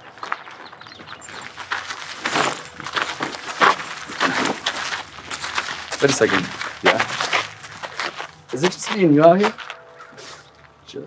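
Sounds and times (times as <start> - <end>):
footsteps crunching on gravel: 0.0 - 10.8.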